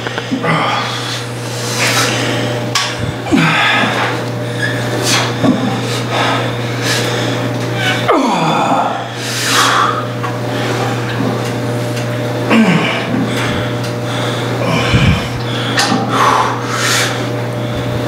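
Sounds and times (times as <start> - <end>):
low hum: 0.0 - 18.0
man breathing hard: 0.4 - 10.8, 12.5 - 17.9
forceful exhales and strained sounds: 0.4 - 11.0, 12.5 - 17.3.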